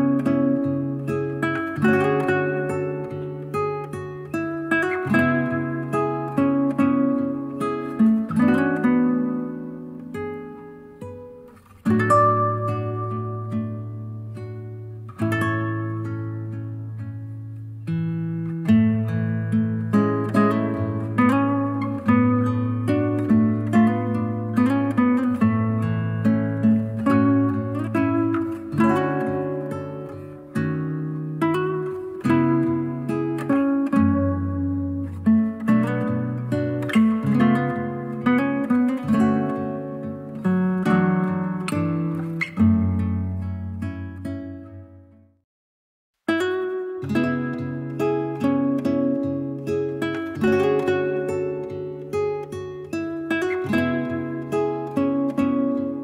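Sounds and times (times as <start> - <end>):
fingerpicked acoustic guitar: 0.0 - 45.4, 46.2 - 56.0.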